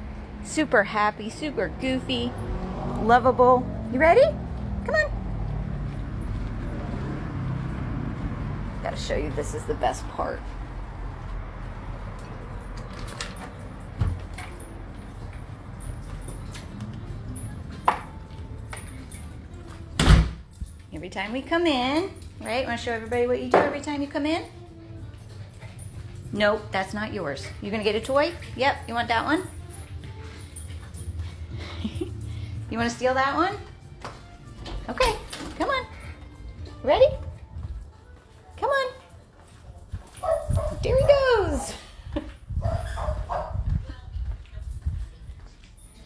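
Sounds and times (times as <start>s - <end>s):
door shutting with heavy thud: 20.0s - 20.4s.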